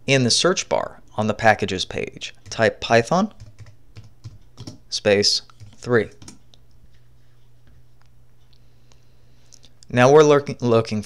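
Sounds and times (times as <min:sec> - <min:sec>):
steady low hum: 0:00.0 - 0:11.0
keyboard and mouse clicks: 0:02.4 - 0:02.7, 0:03.3 - 0:04.8, 0:05.4 - 0:06.7.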